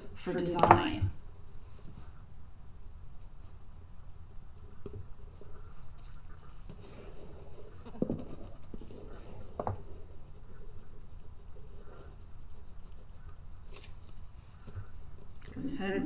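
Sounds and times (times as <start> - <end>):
hands rubbing wax surface: 0.0 - 16.0.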